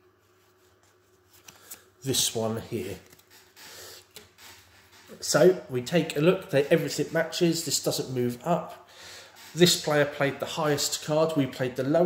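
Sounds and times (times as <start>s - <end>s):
playing cards rustling: 0.2s - 4.5s.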